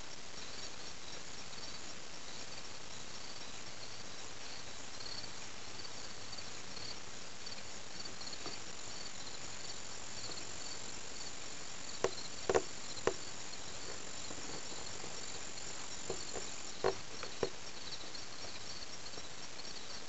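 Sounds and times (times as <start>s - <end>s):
crickets chirping: 0.0s - 20.0s
high insect trill: 0.0s - 20.0s
short knocks: 12.0s - 13.2s, 15.9s - 17.6s.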